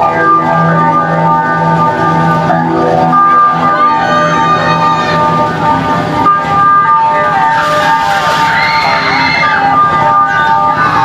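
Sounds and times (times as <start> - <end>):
electric guitar chords: 0.0 - 11.0
keyboard chords: 0.0 - 11.0.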